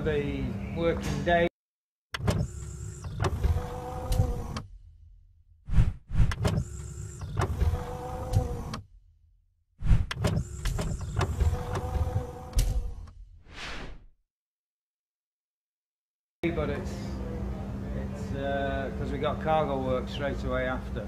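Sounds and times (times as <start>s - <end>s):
steady mechanical hum: 0.0s - 1.5s, 2.4s - 4.8s, 6.5s - 8.9s, 10.4s - 13.1s, 16.4s - 21.0s
motorised whirring with clicks: 2.2s - 4.7s, 6.3s - 8.9s, 10.1s - 13.2s.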